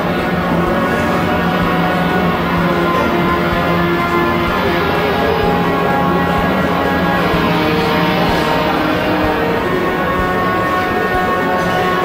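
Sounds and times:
music with long held notes: 0.0s - 12.0s.

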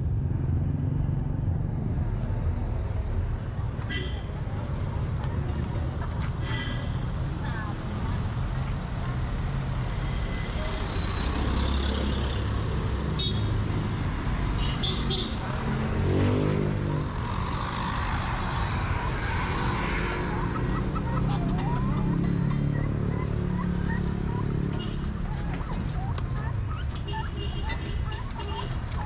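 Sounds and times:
traffic rumble: 0.0s - 29.0s
engine revving: 15.5s - 20.7s.

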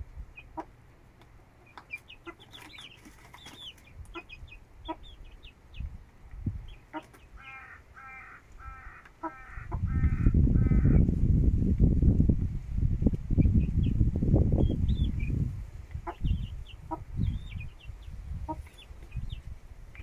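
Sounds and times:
chicks peeping: 0.2s - 11.1s, 13.1s - 20.0s
hen clucking: 0.3s - 0.8s, 1.6s - 5.9s, 6.7s - 11.0s, 14.9s - 19.4s
loud low rumbling noise: 9.5s - 18.6s.

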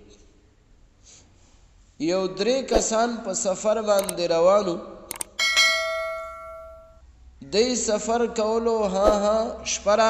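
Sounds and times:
bell ding: 5.4s - 7.0s.

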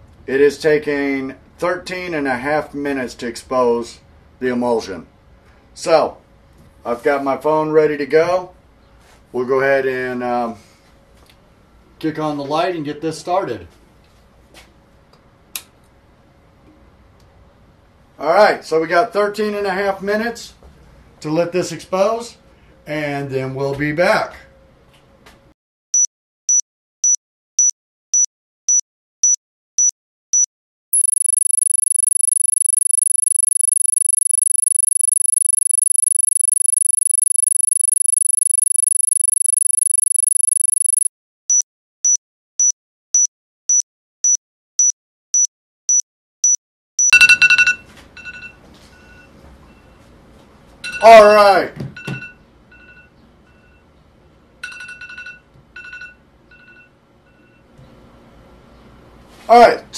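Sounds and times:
short electronic beeps: 26.0s - 47.8s
high-pitched fluttering electronic tone: 31.0s - 41.1s.

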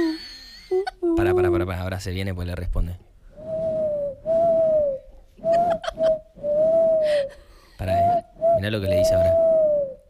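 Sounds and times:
person whistling bird call: 3.4s - 7.1s, 7.8s - 10.0s
breathing: 7.0s - 7.8s.

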